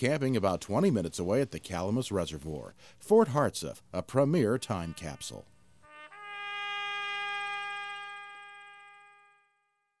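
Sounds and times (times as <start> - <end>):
held brass note: 4.7 - 9.9.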